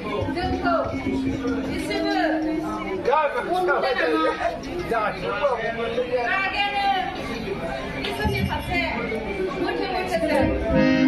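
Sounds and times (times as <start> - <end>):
stage dialogue into microphones: 0.0 - 11.0.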